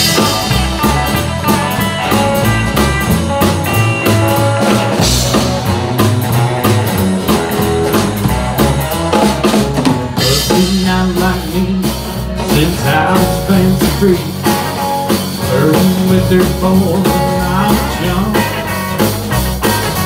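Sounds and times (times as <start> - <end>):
drum kit beat: 0.0 - 20.0
electric guitars: 0.0 - 20.0.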